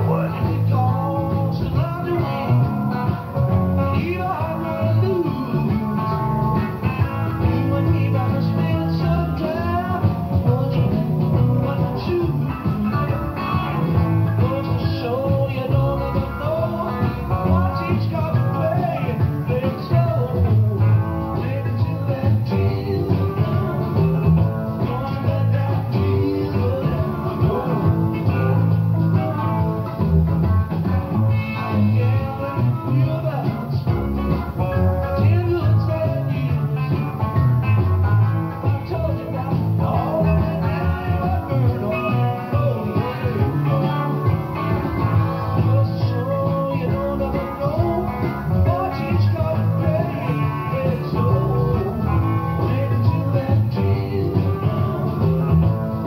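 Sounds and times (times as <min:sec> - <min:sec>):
rock song on cassette: 0:00.0 - 0:56.0.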